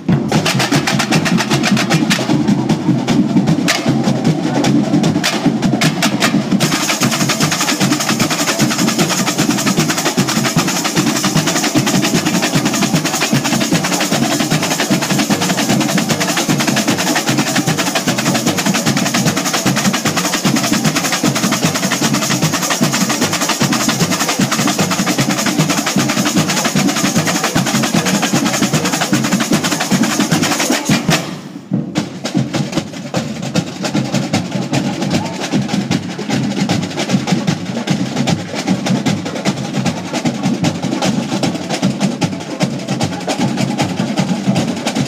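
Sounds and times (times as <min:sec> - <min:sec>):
samba drum groove: 0:00.0 - 0:45.0.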